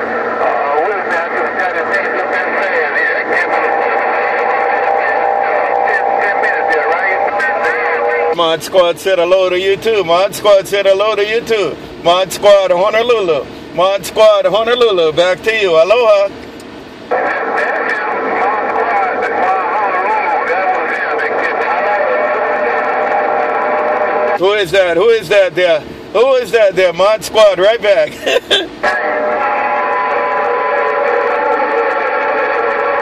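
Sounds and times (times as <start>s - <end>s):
tinny radio voice: 0.0s - 9.3s, 17.1s - 25.6s, 27.5s - 33.0s
radio noise: 0.0s - 33.0s.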